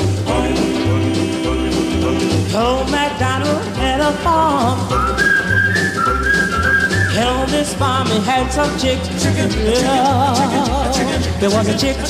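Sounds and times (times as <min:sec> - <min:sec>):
bass and drum beat: 0:00.0 - 0:12.0
whistled melody: 0:04.8 - 0:07.6.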